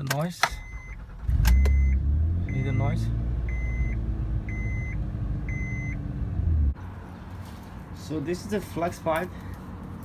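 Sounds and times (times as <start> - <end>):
dashboard warning chime: 0.5 - 6.1.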